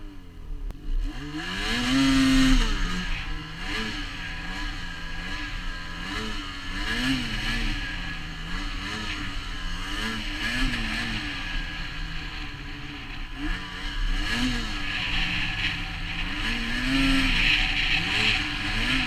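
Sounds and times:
snowmobile engine revving: 0.0 - 19.0
steady rush of noise: 2.2 - 19.0.

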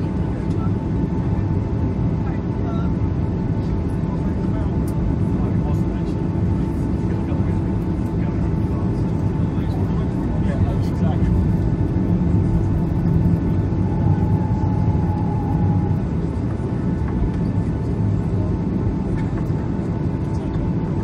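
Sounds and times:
cabin air system hum: 0.0 - 21.0
jet engines idling: 0.0 - 21.0.

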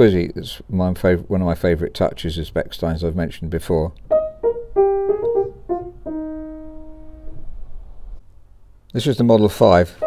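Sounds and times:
grand piano notes: 4.0 - 8.2.

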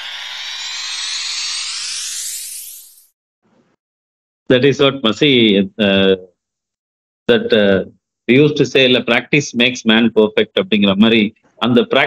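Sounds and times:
riser tones gliding upward: 0.0 - 3.1.

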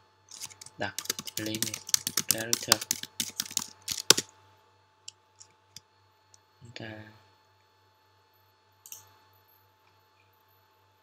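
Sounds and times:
faint keyboard clicks: 0.3 - 4.2
fast typing on keyboard: 0.3 - 4.3.

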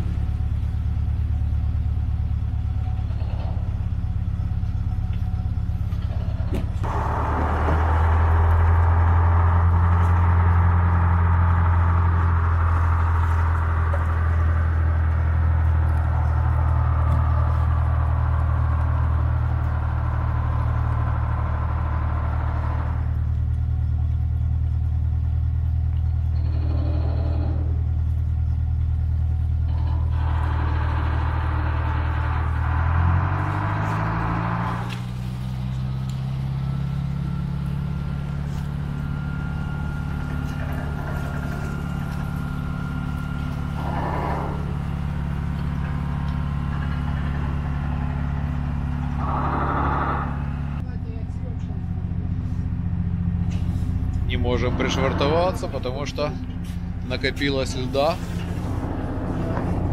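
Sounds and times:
motor boat engine running: 0.0 - 59.9.

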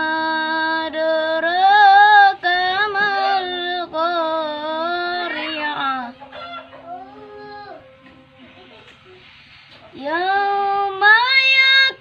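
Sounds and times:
boy chanting melodically: 0.0 - 7.9, 10.0 - 12.0.

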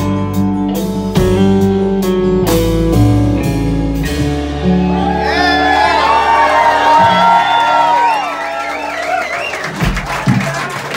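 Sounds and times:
electric guitar bending notes: 0.0 - 8.1
audience cheering and whooping: 4.6 - 10.9.

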